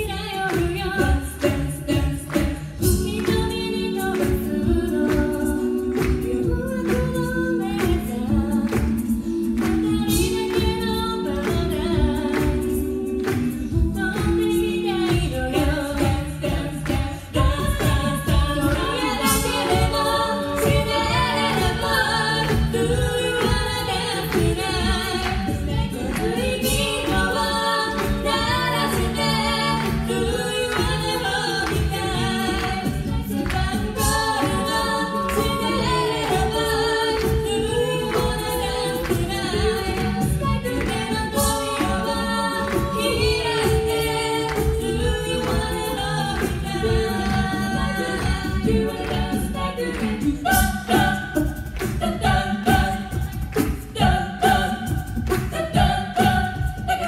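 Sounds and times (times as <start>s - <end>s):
women singing a cappella in harmony: 0.0s - 57.0s.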